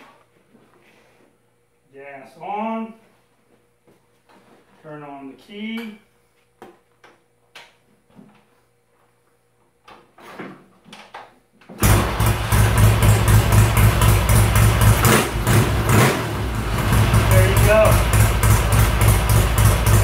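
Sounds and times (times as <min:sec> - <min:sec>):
motorcycle engine running: 0:11.8 - 0:20.0.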